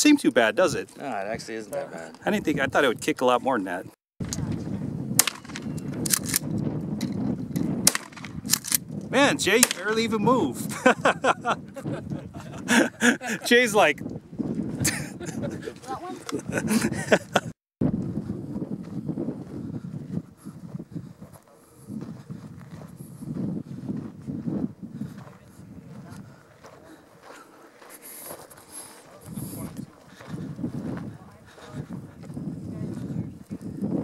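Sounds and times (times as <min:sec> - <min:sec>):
wind on microphone: 0:02.2 - 0:03.1, 0:04.2 - 0:27.3, 0:28.4 - 0:34.0
footsteps on dry ground: 0:11.6 - 0:34.0.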